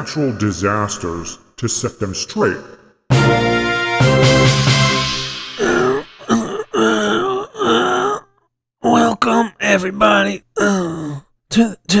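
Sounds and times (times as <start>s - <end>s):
man making wordless vocal sounds: 5.6s - 12.0s.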